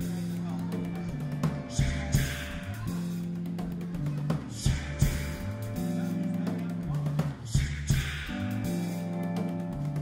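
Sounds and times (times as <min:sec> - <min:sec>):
drum and cymbal hits: 0:00.0 - 0:10.0
live rock band playing: 0:00.0 - 0:10.0.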